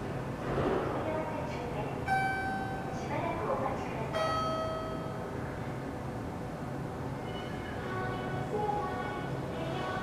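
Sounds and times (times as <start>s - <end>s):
low steady hum: 0.0s - 10.0s
bell-like chime tone: 4.2s - 5.2s.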